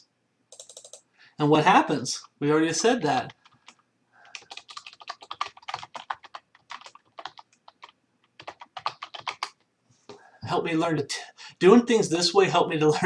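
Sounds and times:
typing on a computer keyboard: 0.5 - 1.0, 3.2 - 9.6.

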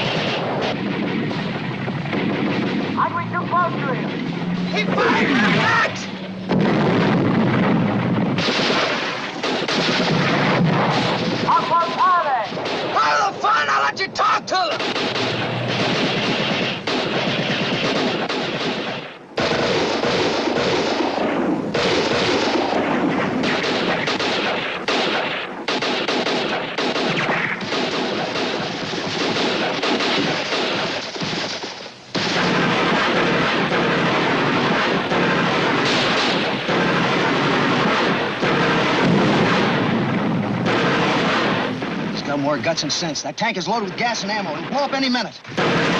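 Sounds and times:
rifle and machine-gun fire: 0.0 - 13.6, 14.6 - 42.8, 43.7 - 45.9
explosions: 0.0 - 13.9, 14.6 - 45.9.

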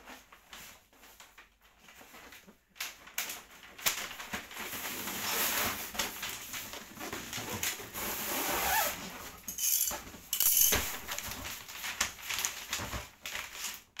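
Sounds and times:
wrapping paper crinkling: 0.0 - 9.4, 10.7 - 14.0.

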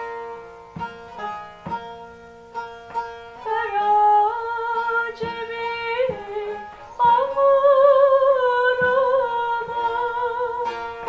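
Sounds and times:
plucked long-necked lute: 0.0 - 11.0
woman singing folk song: 2.9 - 11.0.

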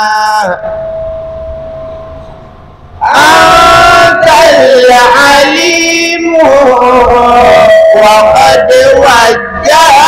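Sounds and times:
man chanting: 0.0 - 0.6, 3.0 - 10.0
faint steady tone: 0.0 - 3.1.

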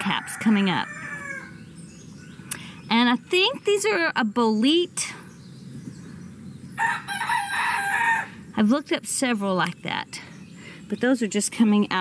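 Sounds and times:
rooster crowing: 0.0 - 1.5, 6.8 - 8.4.

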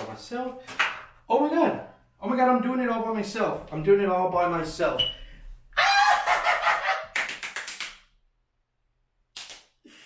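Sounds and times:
fast hand claps: 7.1 - 8.1, 9.4 - 9.7.

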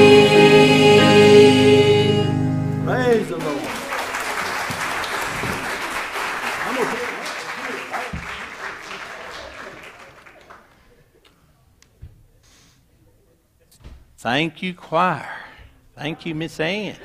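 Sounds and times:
few voices: 0.0 - 4.0
congregation applauding: 2.8 - 11.0.

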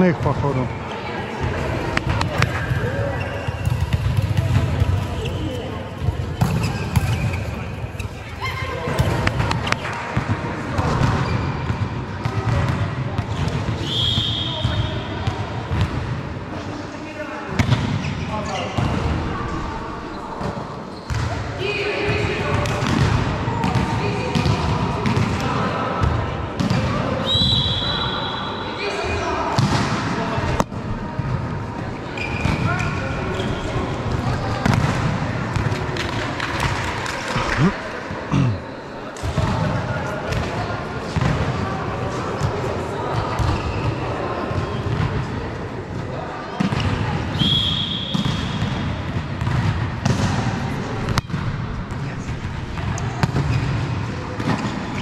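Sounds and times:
players calling out and talking: 0.0 - 55.0
ball bouncing off court floor: 6.0 - 7.5.

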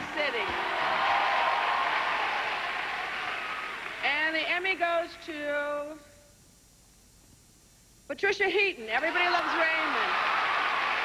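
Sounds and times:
audience applause: 0.0 - 4.1, 10.0 - 11.0.

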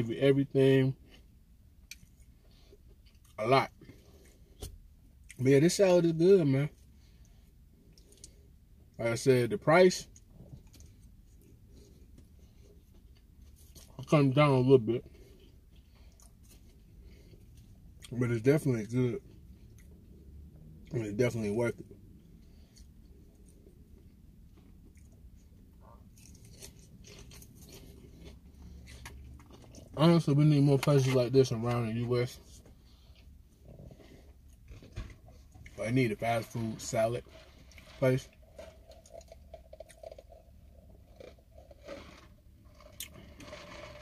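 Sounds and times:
steady low hum: 0.0 - 44.0
person chewing crisp salad: 6.8 - 8.6, 10.1 - 14.1, 15.0 - 18.2, 19.2 - 21.0, 21.8 - 31.7, 32.3 - 44.0.

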